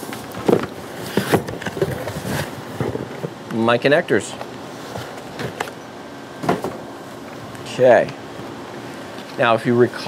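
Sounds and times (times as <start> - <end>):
cardboard box being rummaged: 0.4 - 3.3.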